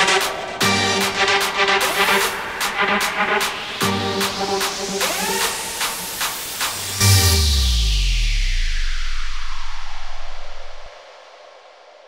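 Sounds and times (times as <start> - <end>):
white-noise riser: 4.3 - 11.6
upward sweep: 6.7 - 10.9.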